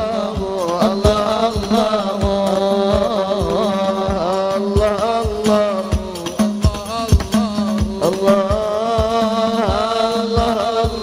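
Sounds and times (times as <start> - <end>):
low drum beats: 0.0 - 11.0
person singing ornamented melody: 0.0 - 11.0.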